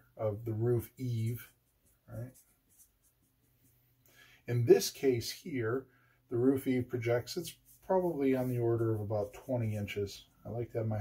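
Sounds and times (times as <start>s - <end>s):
felt-tip marker drawing on paper: 1.2s - 3.8s, 7.5s - 10.4s.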